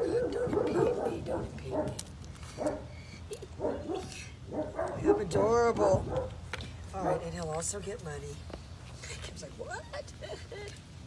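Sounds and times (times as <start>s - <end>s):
puppy calls: 0.0s - 6.4s.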